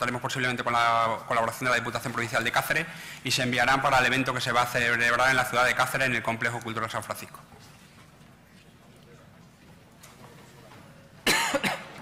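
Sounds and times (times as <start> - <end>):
person coughing: 11.2 - 12.0.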